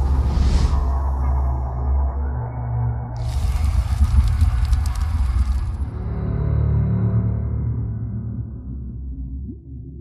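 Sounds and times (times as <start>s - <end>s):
low deep drone: 0.0s - 10.0s.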